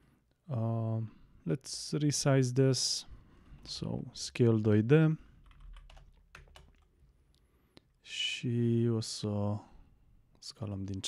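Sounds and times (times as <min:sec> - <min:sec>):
keyboard keystrokes: 0:05.4 - 0:06.9.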